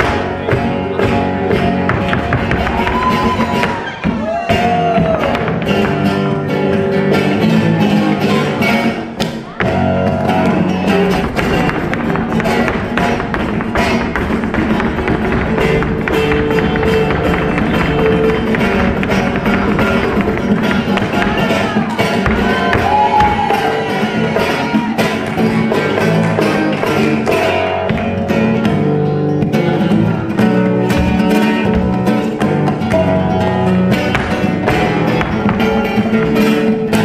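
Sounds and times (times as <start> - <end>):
flamenco guitar playing: 0.0 - 37.0.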